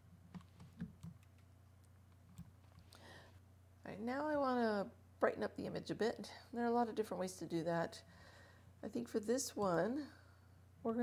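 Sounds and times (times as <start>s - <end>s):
low steady hum: 0.0s - 11.0s
keyboard and mouse clicks: 0.3s - 2.8s.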